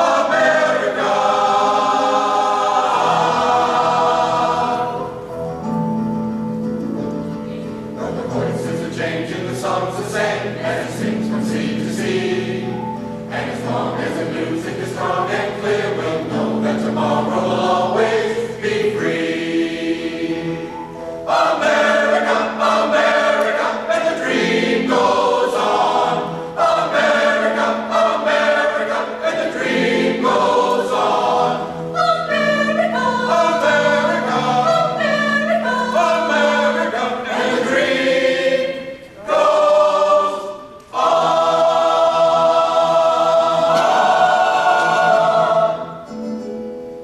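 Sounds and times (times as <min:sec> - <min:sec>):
mixed choir singing in harmony: 0:00.0 - 0:07.0, 0:07.6 - 0:46.6.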